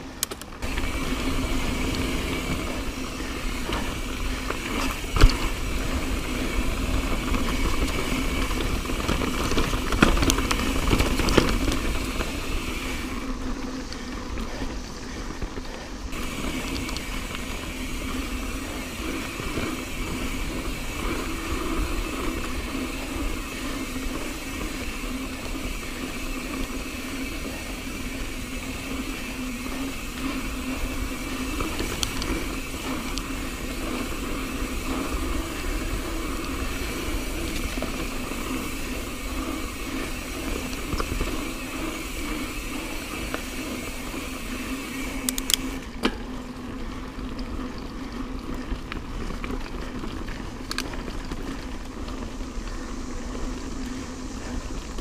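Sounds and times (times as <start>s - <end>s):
bike tyres on dirt: 0.0s - 55.0s
sharp bike clicks: 0.0s - 55.0s.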